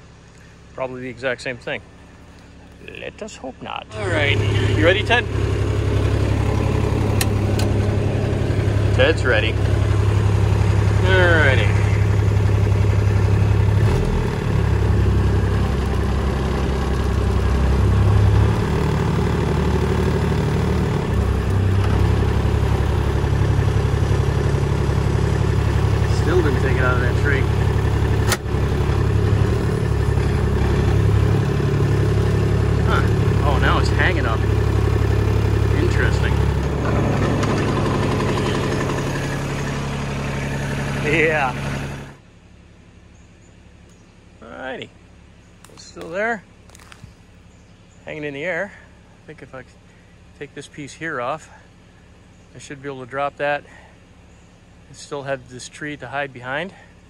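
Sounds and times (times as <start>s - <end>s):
utility vehicle engine under load: 0.0s - 50.8s.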